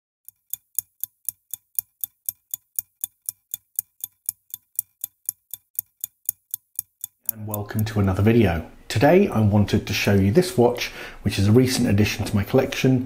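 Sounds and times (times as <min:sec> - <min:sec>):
clock ticking: 0:00.2 - 0:08.3.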